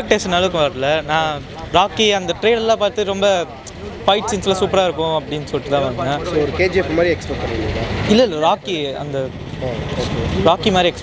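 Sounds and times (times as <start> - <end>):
low rumble of street traffic: 0.0 - 11.0
man speaking: 0.0 - 11.0.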